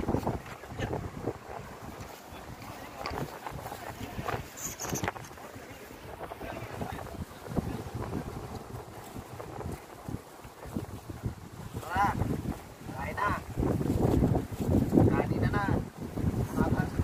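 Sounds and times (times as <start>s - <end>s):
surf on the shore: 0.0s - 17.0s
wind buffeting microphone: 0.0s - 17.0s.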